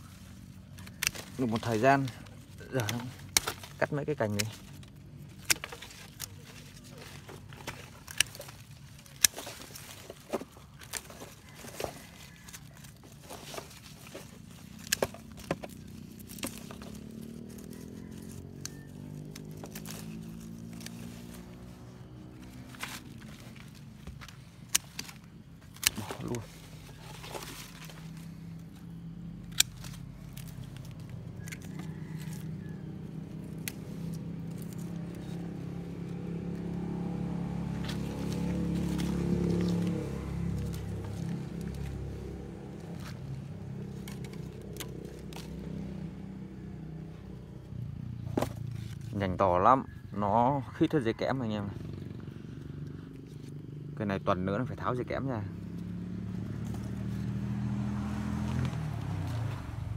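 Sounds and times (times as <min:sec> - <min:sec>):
pruning shears snipping branches: 0:00.0 - 0:47.3.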